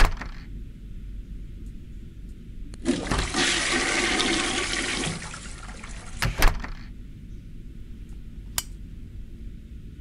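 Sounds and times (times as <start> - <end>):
click: 8.5 - 8.8.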